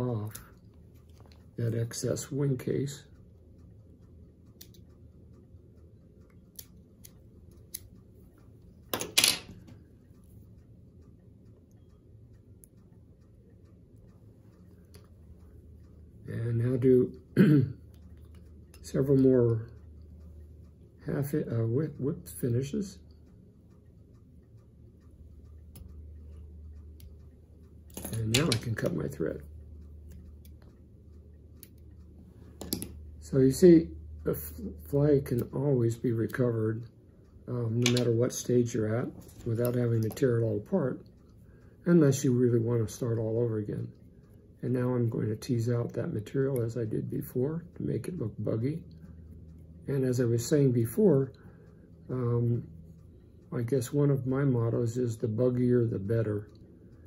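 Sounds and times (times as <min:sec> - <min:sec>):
tools knocking: 0:08.9 - 0:09.6.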